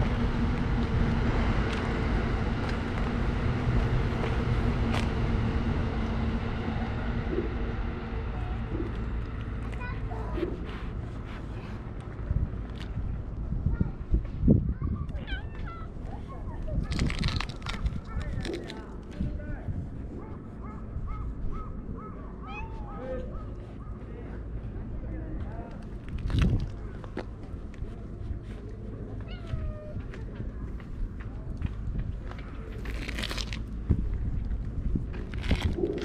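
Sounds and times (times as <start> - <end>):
wind rumble on microphone: 0.0 - 36.0
cats meowing: 15.1 - 15.9, 22.4 - 23.3, 29.2 - 30.1.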